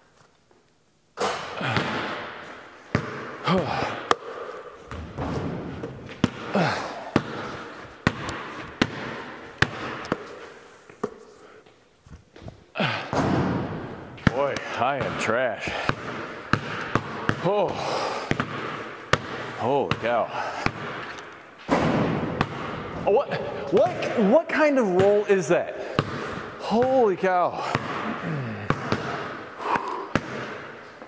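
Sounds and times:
basketball bouncing on concrete: 0:04.9 - 0:10.3, 0:14.2 - 0:21.1, 0:21.7 - 0:22.8, 0:28.6 - 0:29.3, 0:30.1 - 0:30.6.

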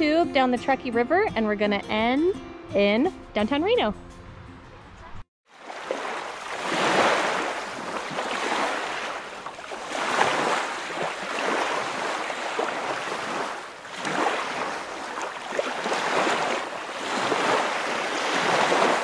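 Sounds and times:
river water rushing: 0:05.6 - 0:19.0.

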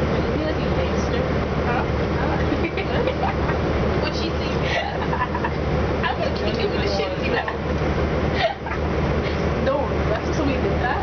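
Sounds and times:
people talking: 0:00.0 - 0:07.8, 0:09.5 - 0:11.0
bus engine idling: 0:00.0 - 0:11.0.

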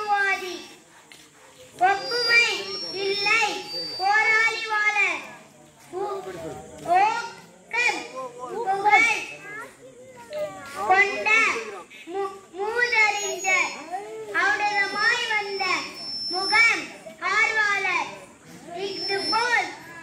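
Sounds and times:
children speaking together: 0:00.0 - 0:20.0.

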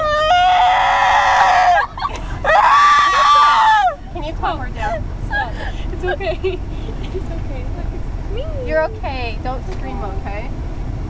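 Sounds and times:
woman screaming muffled: 0:00.0 - 0:04.0.

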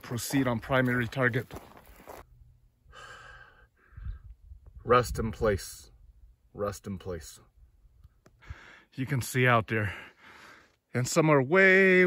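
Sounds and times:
man breathing: 0:02.8 - 0:04.4, 0:08.4 - 0:08.9, 0:09.8 - 0:10.8.

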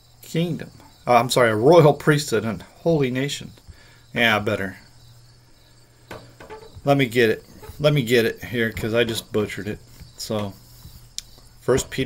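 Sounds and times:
steady low hum: 0:00.0 - 0:12.0
man speaking: 0:04.2 - 0:04.8, 0:06.8 - 0:10.6, 0:11.6 - 0:12.0
faint clicks: 0:11.2 - 0:11.5.

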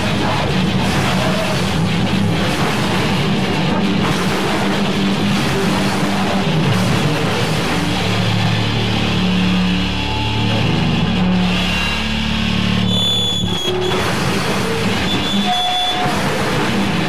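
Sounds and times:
harsh distorted noise: 0:00.0 - 0:17.0
low droning hum: 0:00.0 - 0:17.0
high whistling tones: 0:09.4 - 0:16.3.

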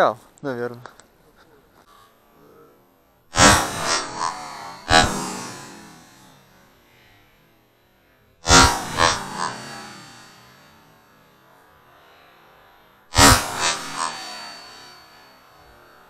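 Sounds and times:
shotgun shots with echo: 0:03.4 - 0:06.2.

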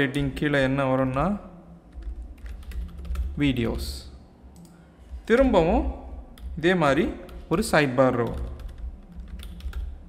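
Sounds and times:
computer keyboard typing: 0:00.1 - 0:03.9, 0:06.3 - 0:10.0.

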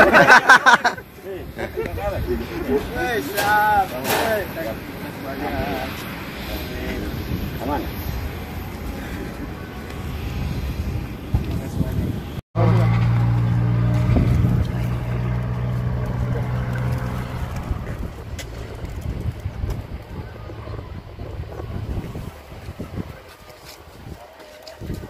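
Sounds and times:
low engine hum: 0:12.6 - 0:23.2.

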